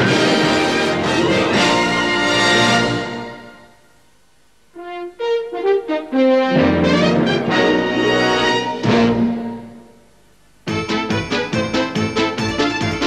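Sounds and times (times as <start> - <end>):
cartoon theme music: 0.0 - 3.6, 4.8 - 9.8, 10.7 - 13.0
orchestral brass fanfare: 0.0 - 3.6, 4.8 - 9.8.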